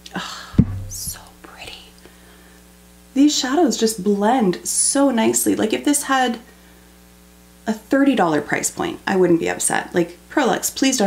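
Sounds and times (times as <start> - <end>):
low steady hum: 0.1 - 3.2.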